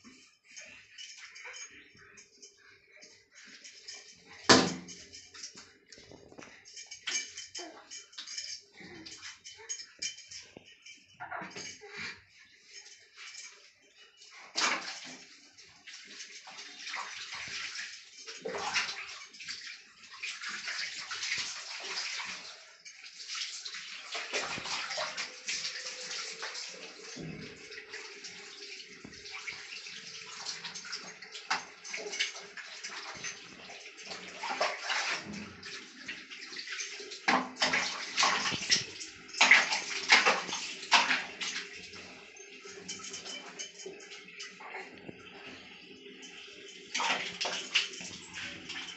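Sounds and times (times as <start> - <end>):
water splashing on tiled floor: 14.4 - 44.8, 46.2 - 48.9.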